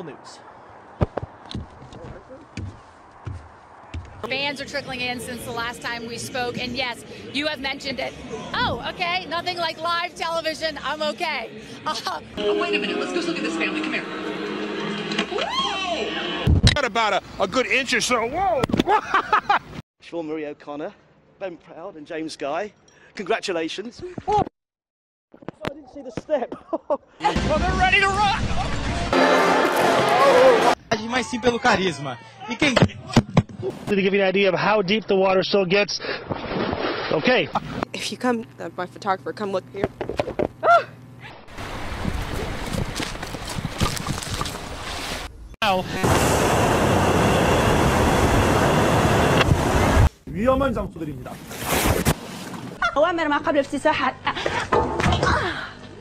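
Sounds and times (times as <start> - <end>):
background music: 4.3 - 16.4
crowd voices: 4.3 - 16.5, 27.3 - 31.6
woman crying out: 40.6 - 41.0
scuffling on icy road: 41.9 - 45.3.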